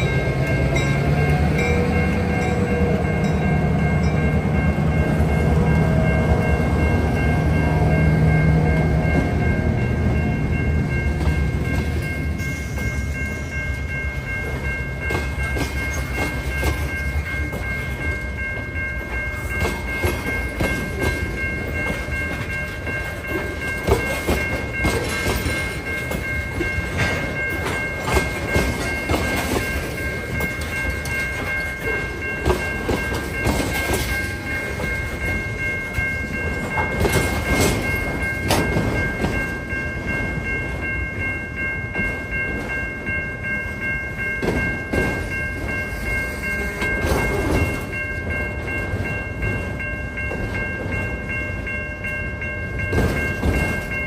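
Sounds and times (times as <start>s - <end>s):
steady high tone: 0.0s - 54.0s
train wheels clacking over rail joints: 19.1s - 39.6s, 52.8s - 54.0s.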